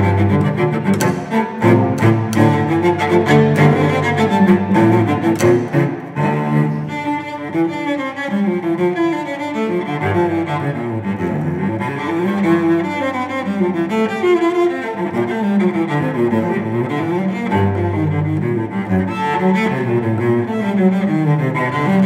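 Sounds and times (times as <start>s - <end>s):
solo cello bowed melody: 0.0s - 22.0s.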